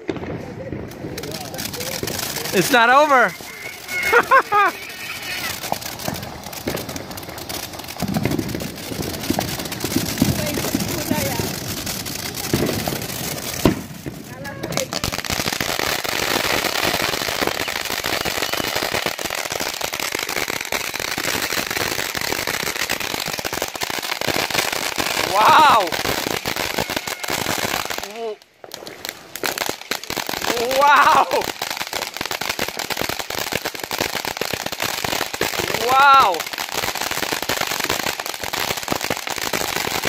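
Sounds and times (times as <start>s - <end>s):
crackling firework fountain: 0.0s - 40.0s
person whooping: 3.4s - 5.6s, 25.2s - 26.0s, 30.4s - 31.5s, 35.7s - 36.4s.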